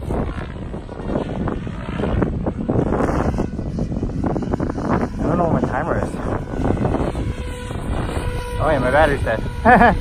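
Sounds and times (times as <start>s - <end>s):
distant helicopter rotor and motor: 0.0s - 10.0s
wind rumble on microphone: 0.0s - 10.0s.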